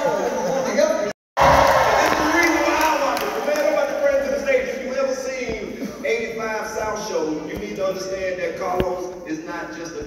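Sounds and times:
man speaking in a large hall: 0.0 - 10.0.

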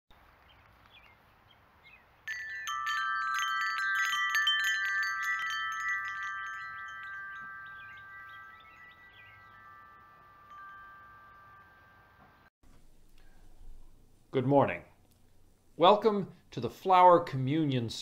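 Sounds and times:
wind chimes ringing: 2.3 - 12.5.

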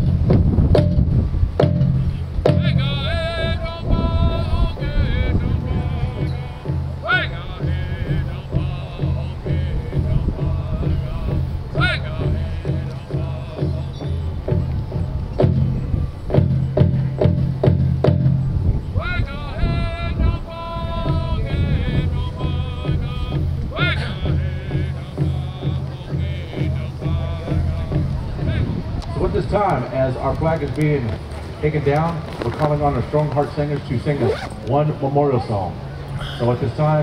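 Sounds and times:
hand drum beating: 0.3 - 2.8
high voices singing calls: 1.8 - 30.2.

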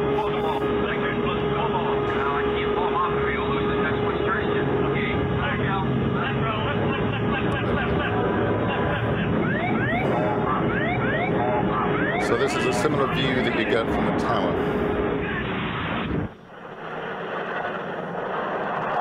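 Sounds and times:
ground proximity warning alarm: 0.0 - 18.6
steady hum: 0.0 - 19.0.

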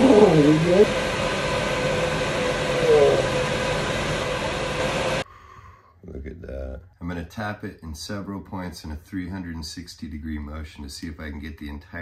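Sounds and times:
torch flame hissing: 0.0 - 5.2
faint hum: 0.0 - 8.0.

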